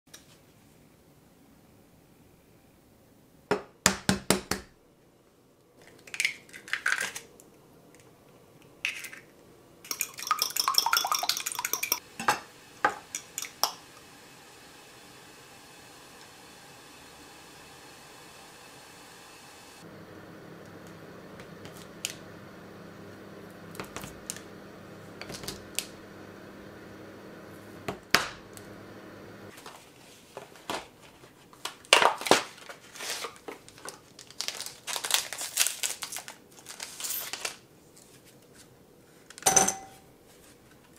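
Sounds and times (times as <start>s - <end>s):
packaging crinkling: 30.5s - 37.6s.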